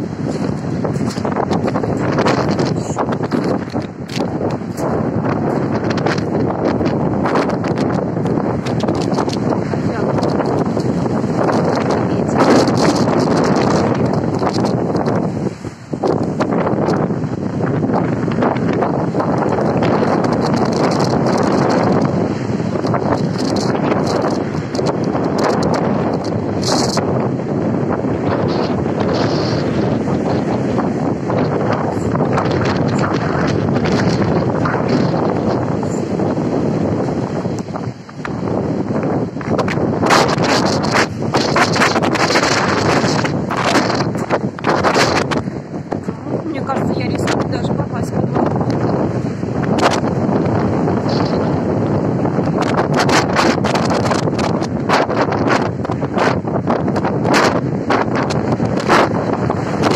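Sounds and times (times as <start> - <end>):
surf breaking on pebbles: 0.0 - 46.6, 47.2 - 59.9
wind buffeting microphone: 0.0 - 59.9.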